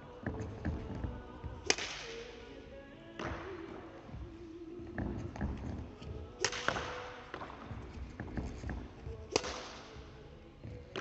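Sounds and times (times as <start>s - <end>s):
racket striking shuttlecock: 6.4s - 7.6s, 9.3s - 10.0s.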